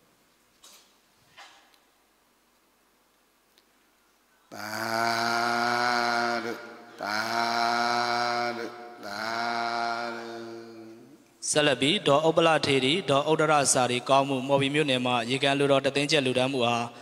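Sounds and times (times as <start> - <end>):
man chanting low held syllables: 4.5 - 17.0.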